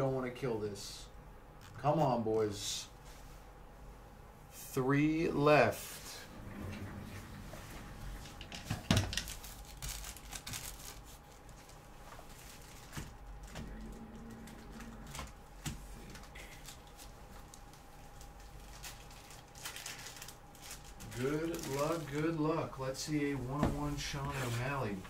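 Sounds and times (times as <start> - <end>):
faint room hum: 0.0 - 25.0.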